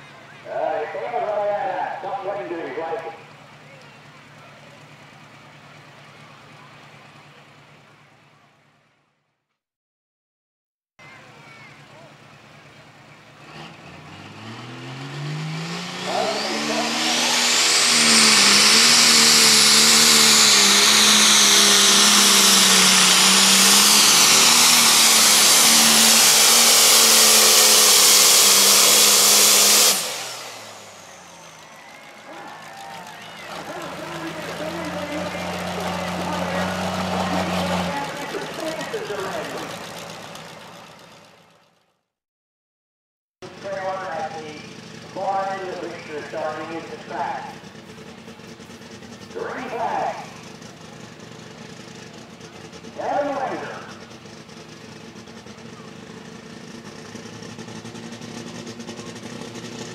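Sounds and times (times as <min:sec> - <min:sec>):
tractor engine revving: 0:00.0 - 0:08.4, 0:11.0 - 0:41.9, 0:43.4 - 0:59.9
lower engine running steadily: 0:00.0 - 0:09.1, 0:11.0 - 0:41.8, 0:43.4 - 0:59.9
high whine: 0:15.7 - 0:31.6.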